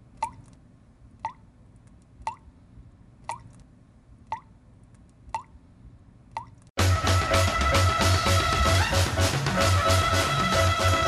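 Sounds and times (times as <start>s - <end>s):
water drop plopping: 3.3s - 3.5s
loud music with bass beat: 6.8s - 11.0s.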